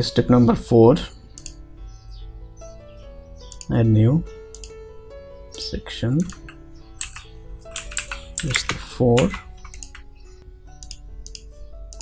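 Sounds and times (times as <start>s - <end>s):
keyboard typing: 5.6s - 10.2s.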